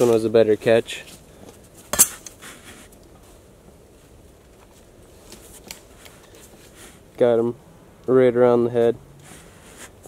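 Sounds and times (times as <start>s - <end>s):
rustles in dry leaves: 0.0s - 7.1s.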